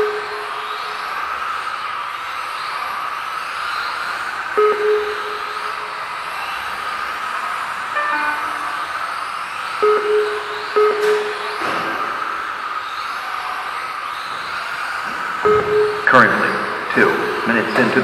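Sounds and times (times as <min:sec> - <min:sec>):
electric rc car motors whining: 0:00.0 - 0:04.6, 0:05.2 - 0:08.0, 0:08.7 - 0:09.8, 0:11.6 - 0:15.5
short beeps: 0:04.6 - 0:05.7, 0:08.0 - 0:09.0, 0:09.8 - 0:12.1, 0:15.5 - 0:18.0
descending electronic tones: 0:04.6 - 0:06.0, 0:07.9 - 0:12.8, 0:15.4 - 0:18.0.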